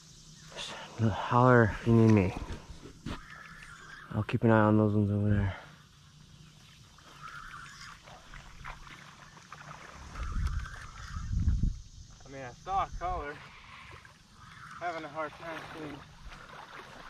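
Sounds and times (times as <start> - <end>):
low rumble on microphone: 10.1 - 12.2.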